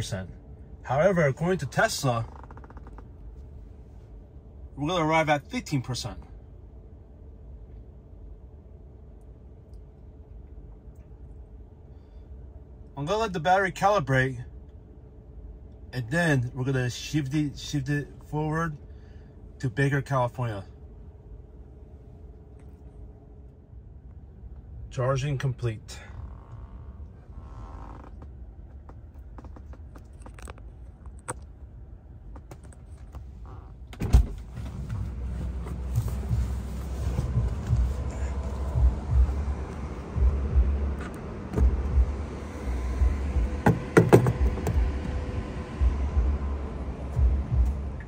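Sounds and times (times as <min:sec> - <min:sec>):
wind and handling noise on microphone: 0:26.2 - 0:40.2
sharp knock: 0:43.6 - 0:44.8.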